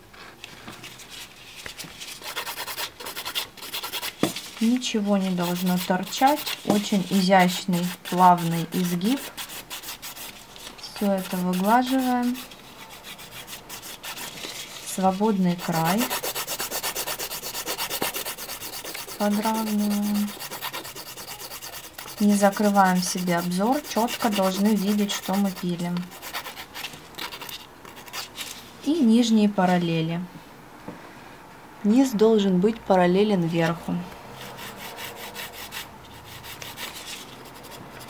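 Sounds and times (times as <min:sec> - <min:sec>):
nail file rasping: 0:02.2 - 0:04.1, 0:11.0 - 0:14.3, 0:15.6 - 0:28.3.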